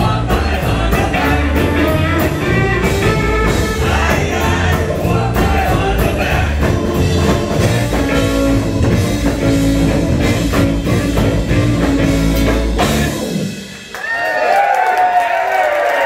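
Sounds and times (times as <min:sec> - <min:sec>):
rock band playing live: 0:00.0 - 0:14.0
audience cheering and whooping: 0:13.8 - 0:16.0.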